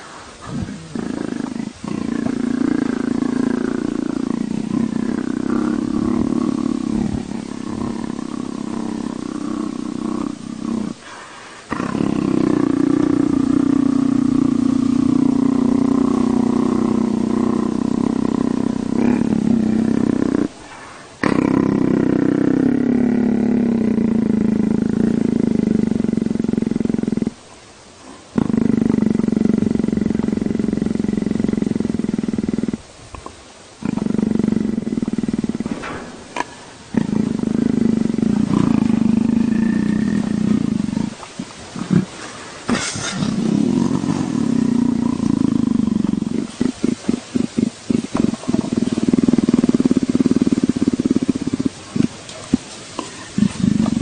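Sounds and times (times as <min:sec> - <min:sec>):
big cat purring rumble: 0:00.0 - 0:54.0.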